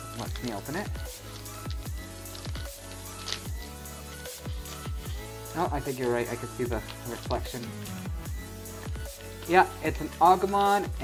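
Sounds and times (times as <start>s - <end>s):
electronic music with synth chords: 0.0s - 11.0s.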